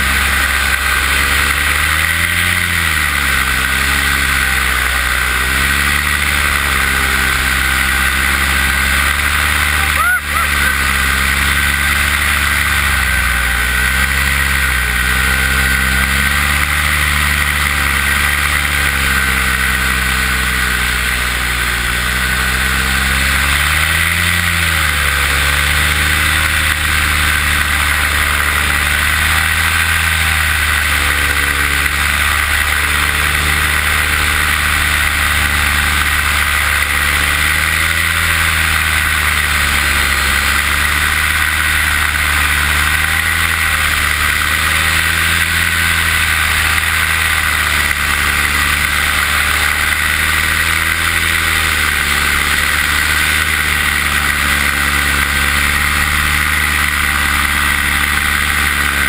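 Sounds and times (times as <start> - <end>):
paramotor engine and propeller: 0.0 - 59.0.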